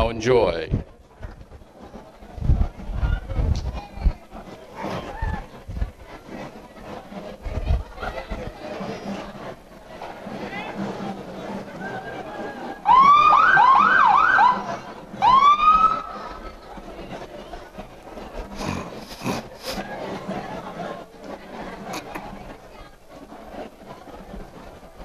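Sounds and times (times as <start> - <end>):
police siren wailing and yelping: 12.9 - 14.6, 15.2 - 16.0.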